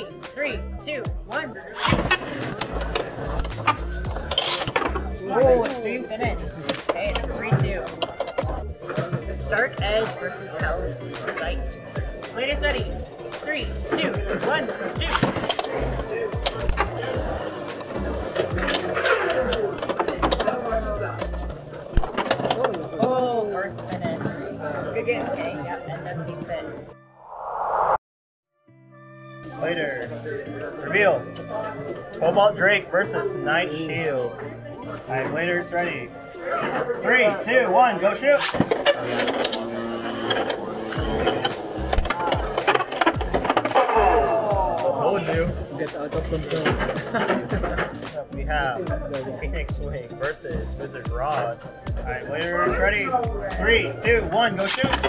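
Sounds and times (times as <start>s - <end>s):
voices: 0.0s - 26.6s
background music: 0.0s - 28.0s, 28.7s - 55.0s.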